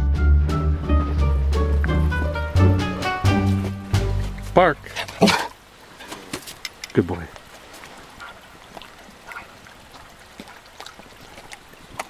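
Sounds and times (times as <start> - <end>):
woodland stream rushing: 0.0 - 12.0
faint clicks: 6.0 - 7.9.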